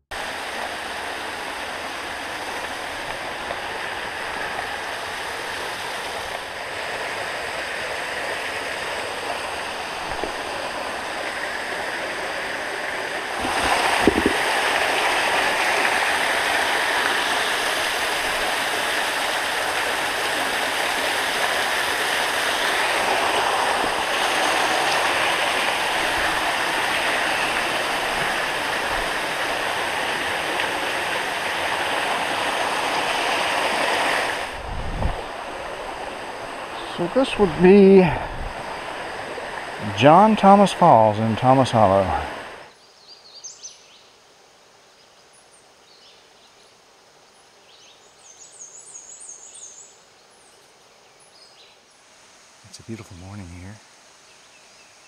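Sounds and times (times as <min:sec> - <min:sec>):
waterfall rushing: 0:00.1 - 0:42.7.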